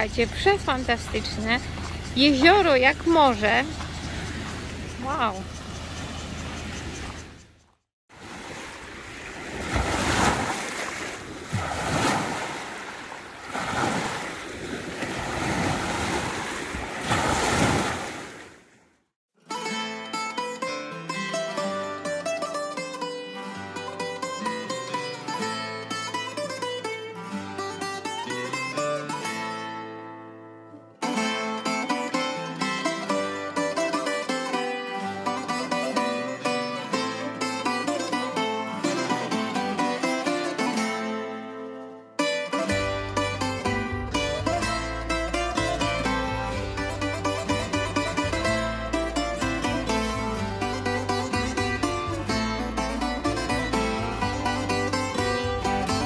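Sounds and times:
plucked-string music: 0.0s - 7.4s, 19.4s - 56.0s
lake waves washing on shore: 8.1s - 18.7s.

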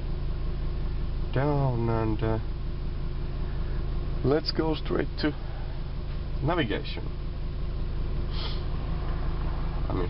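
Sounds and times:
car engine hum: 0.0s - 10.0s
breathy sniff: 8.3s - 8.8s.

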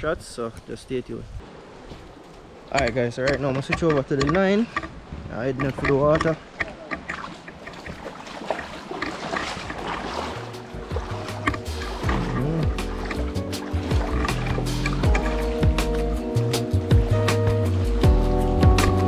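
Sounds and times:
water and outdoor noise: 0.0s - 19.0s
background music with bass beat: 10.5s - 19.0s.

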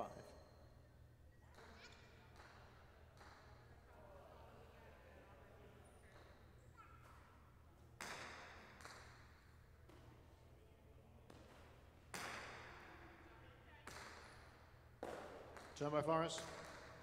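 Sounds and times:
ball cracking against court wall: 11.3s - 12.9s.

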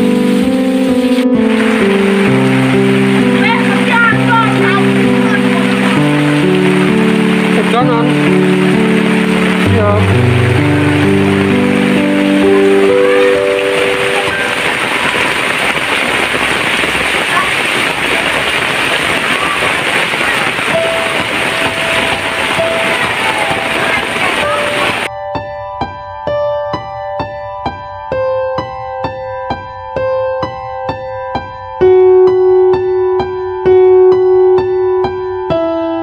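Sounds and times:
heavy rain falling: 0.0s - 25.1s.

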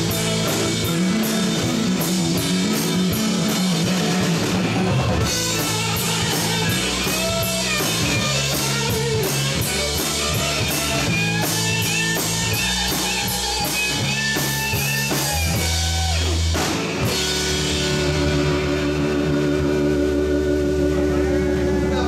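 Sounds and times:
live rock band playing: 0.0s - 22.0s.

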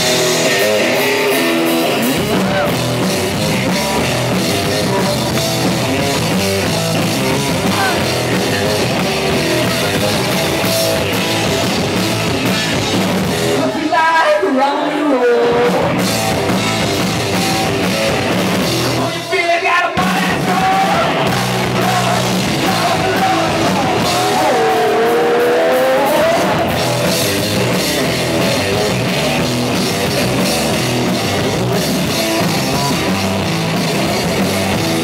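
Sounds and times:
bass guitar: 0.0s - 14.2s, 15.2s - 35.0s
driving drum kit: 0.0s - 14.5s, 15.2s - 35.0s
electric guitars: 0.0s - 35.0s.

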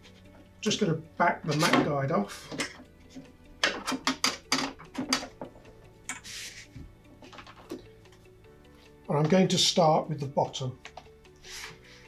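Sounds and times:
metal clicks and knocks: 1.5s - 6.2s
mat board sliding rustle: 6.2s - 6.9s.

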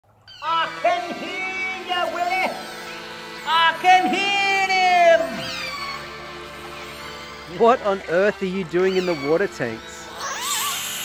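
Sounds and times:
killer whale calls: 8.8s - 11.0s.

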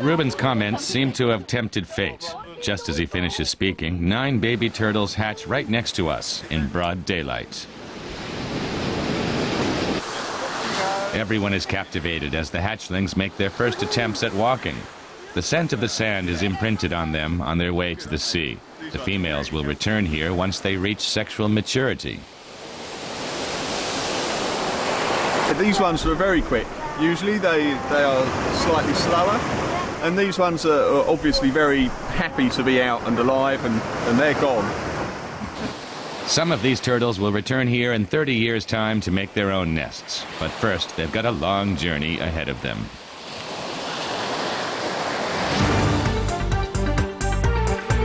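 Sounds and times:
waves washing ashore: 0.0s - 46.2s.

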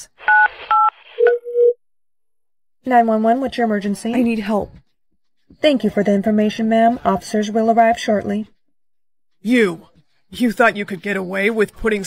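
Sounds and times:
phone call tone: 0.3s - 1.8s.

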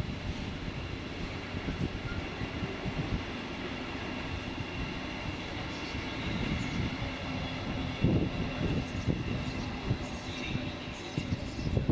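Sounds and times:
freight train rumbling past: 0.0s - 11.9s.

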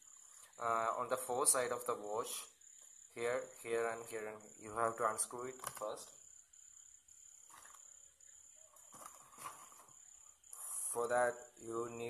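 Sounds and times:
faint soft rustles: 8.6s - 10.9s.

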